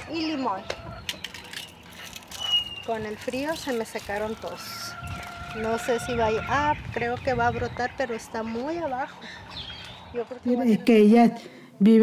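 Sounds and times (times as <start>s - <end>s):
high bird chirp: 0.2s - 3.7s, 4.3s - 10.3s.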